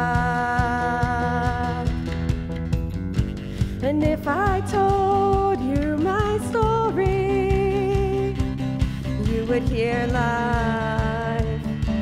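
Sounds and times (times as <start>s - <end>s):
woman singing lead: 0.0s - 2.5s, 3.4s - 12.0s
worship band music: 0.0s - 12.0s.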